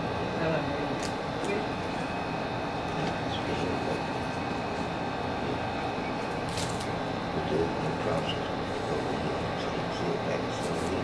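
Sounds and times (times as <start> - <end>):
hiss-like room hum: 0.0 - 11.0.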